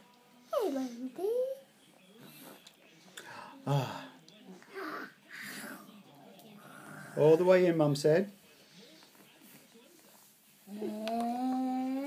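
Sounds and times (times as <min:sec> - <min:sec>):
person humming: 0:10.7 - 0:12.0.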